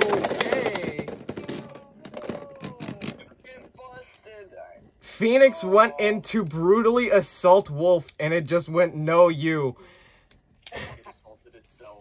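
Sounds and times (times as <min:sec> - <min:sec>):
low voices: 0:00.0 - 0:04.3.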